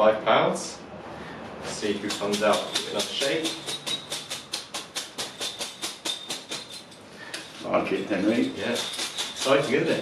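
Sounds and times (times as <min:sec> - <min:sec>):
tokens rattling in cloth bag: 0:05.4 - 0:10.0.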